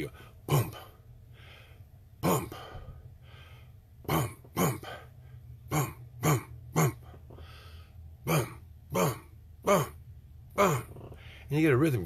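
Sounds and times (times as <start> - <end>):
man making low boom grunts: 0.4 - 1.0, 2.2 - 3.0, 4.0 - 5.0, 5.7 - 7.3, 8.2 - 11.2.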